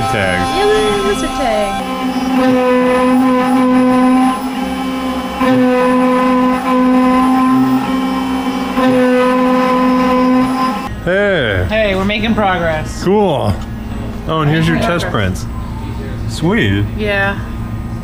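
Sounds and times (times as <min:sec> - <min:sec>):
voice with sliding pitch: 0:00.0 - 0:01.8
cnc mill motors whining: 0:00.0 - 0:11.0.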